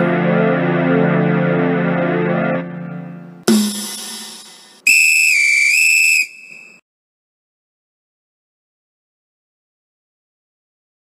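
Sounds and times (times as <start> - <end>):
high whistled note: 3.5 - 6.8.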